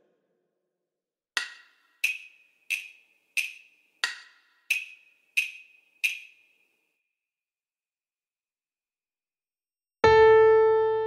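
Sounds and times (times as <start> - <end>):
metronome wood-block clicks: 1.4 - 6.7.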